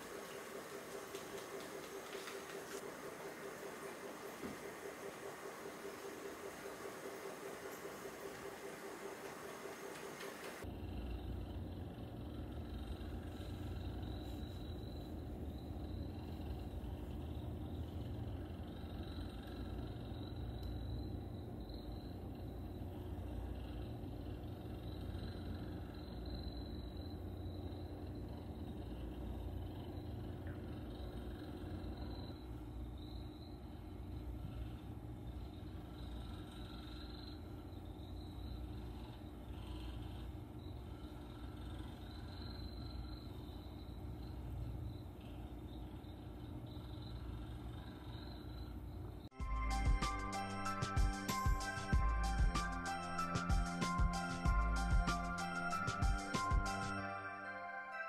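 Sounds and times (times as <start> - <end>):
steady hiss: 0.0 - 10.6
cat purring: 0.5 - 49.2.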